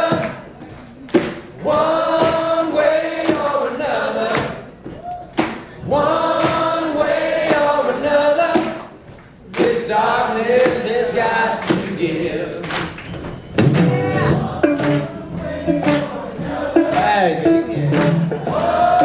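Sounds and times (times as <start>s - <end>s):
man singing: 0.0s - 0.5s, 7.0s - 8.8s, 9.6s - 12.7s, 14.1s - 19.0s
electric guitar: 13.6s - 19.0s.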